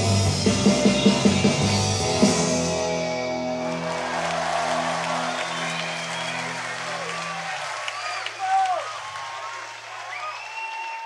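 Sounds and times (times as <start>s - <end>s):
crowd applauding and whistling: 3.5s - 11.0s.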